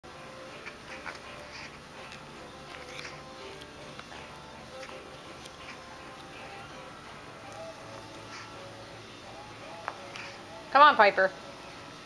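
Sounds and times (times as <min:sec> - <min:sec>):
background music: 0:00.1 - 0:12.0.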